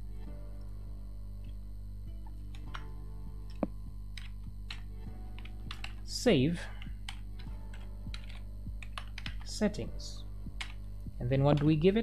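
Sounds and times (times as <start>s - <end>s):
computer keyboard typing: 4.2s - 6.0s, 6.8s - 9.6s, 10.6s - 10.8s.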